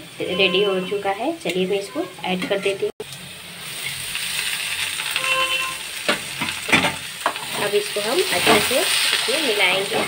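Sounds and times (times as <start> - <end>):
food sizzling in a pan: 0.0 - 10.0.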